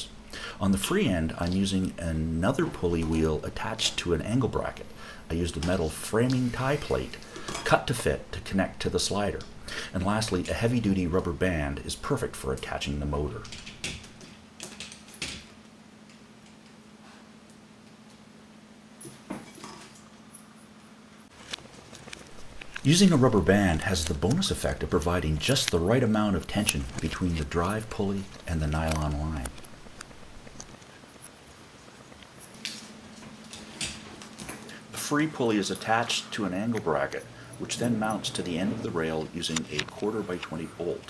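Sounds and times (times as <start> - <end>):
faint steady hum: 0.0 - 41.0
hands rustling parts: 19.0 - 34.9.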